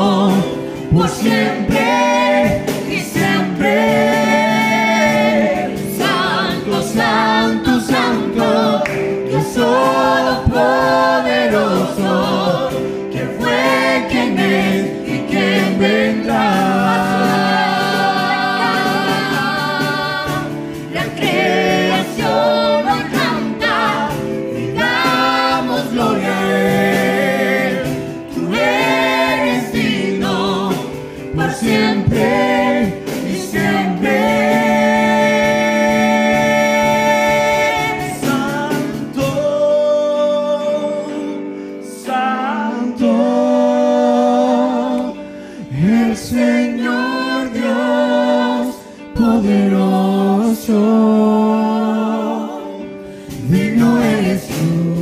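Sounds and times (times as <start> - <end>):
cajon drumming: 0.0 - 39.6
electric keyboard: 0.0 - 55.0
voices singing in harmony: 0.0 - 55.0.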